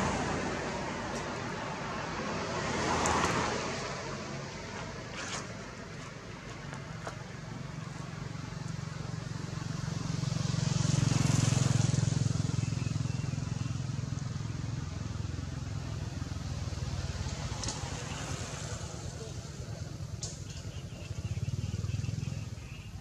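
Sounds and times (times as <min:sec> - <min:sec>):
vehicle engine passing: 0:07.5 - 0:22.9.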